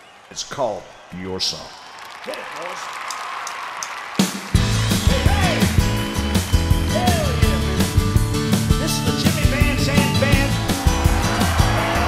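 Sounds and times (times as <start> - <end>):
drum kit steady beat: 4.2 - 12.0
rock band playing: 4.2 - 12.0.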